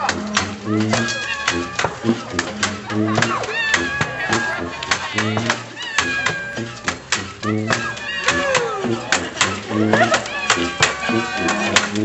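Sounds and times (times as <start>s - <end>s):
people making squeaky cries: 0.0s - 12.0s.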